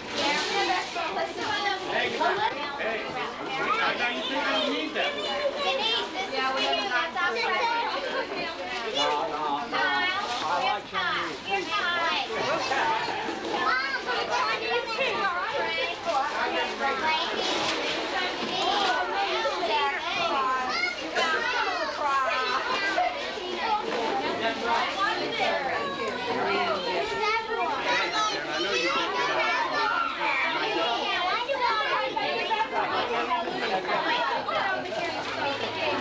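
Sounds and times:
babble of overlapping voices: 0.0 - 36.0
children talking and calling out: 0.0 - 36.0.

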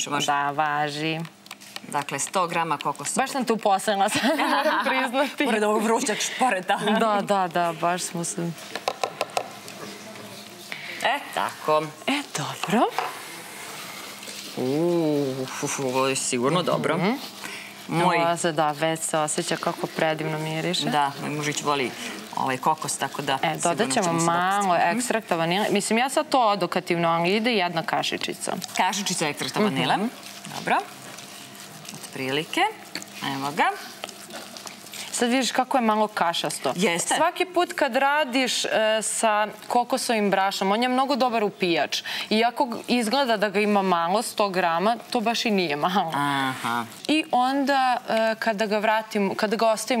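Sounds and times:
woman speaking: 0.0 - 8.6, 10.9 - 13.2, 14.6 - 31.0, 31.9 - 34.0, 35.0 - 50.0
plastic tub knocking on bowl: 8.7 - 9.5
dry flour stirring: 13.5 - 37.4.

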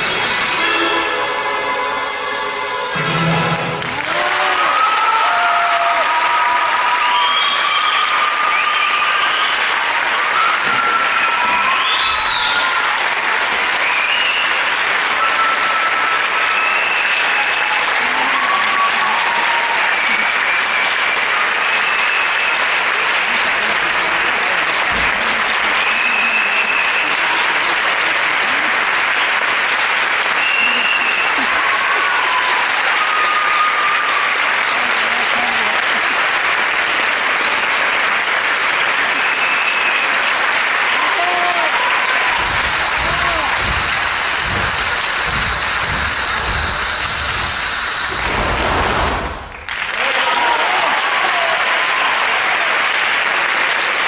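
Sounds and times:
dance music: 0.0 - 4.0, 42.4 - 48.6
people calling out and cheering: 0.0 - 21.0, 30.3 - 36.1, 39.0 - 48.5, 49.2 - 52.8
audience applauding: 0.0 - 54.0.

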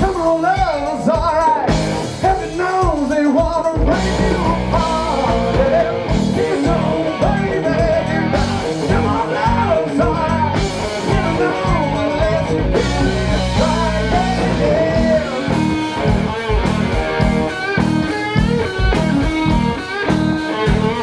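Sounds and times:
man singing into a microphone: 0.0 - 15.7
electric guitar: 0.0 - 21.0.

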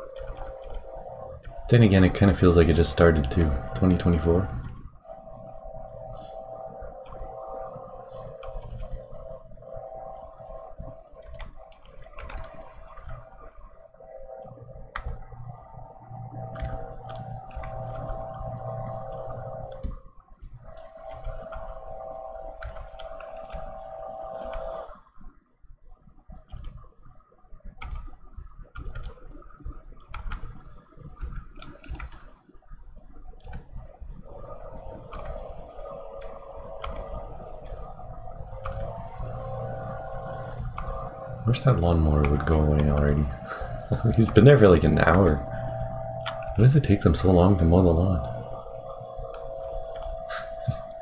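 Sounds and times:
lawn mower engine droning: 34.5 - 51.0.

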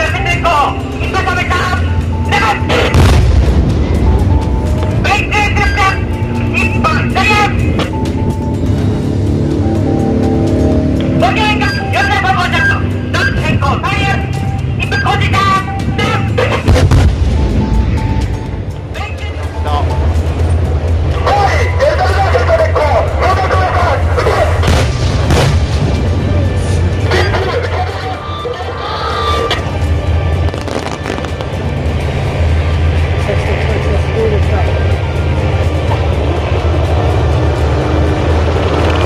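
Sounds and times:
voices: 0.0 - 3.0, 4.1 - 8.8, 11.0 - 16.9, 18.8 - 24.7, 26.2 - 29.9
background music: 0.0 - 39.0
tank engine rumble: 0.0 - 39.0.

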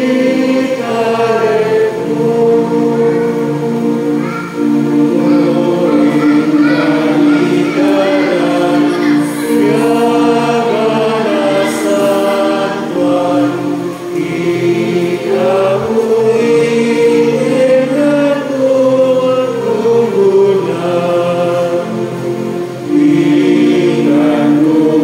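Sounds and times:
voices singing a hymn: 0.0 - 25.0.

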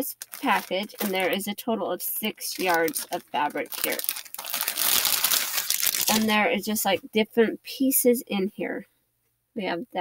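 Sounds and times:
plastic bag crinkling: 0.0 - 6.5.

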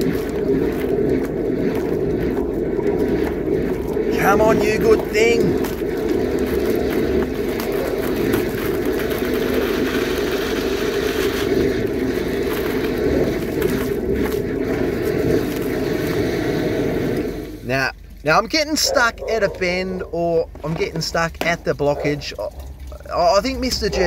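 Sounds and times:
high-pressure water jet in pipe: 0.0 - 18.2
water spraying from pipe: 0.0 - 18.4.

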